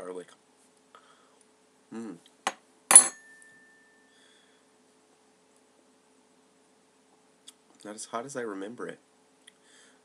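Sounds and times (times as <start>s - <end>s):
tableware clinking: 2.5s - 3.9s.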